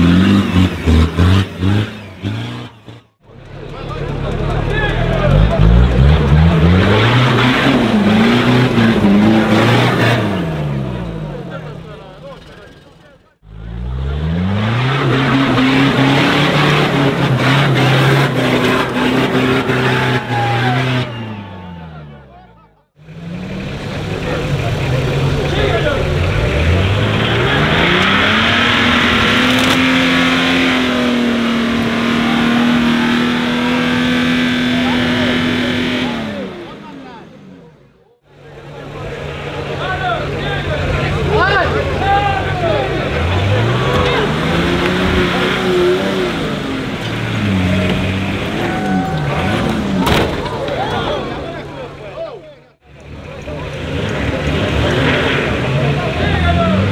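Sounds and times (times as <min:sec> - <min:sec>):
engines revving hard: 0:00.0 - 0:56.9
spectators' voices: 0:00.0 - 0:56.9.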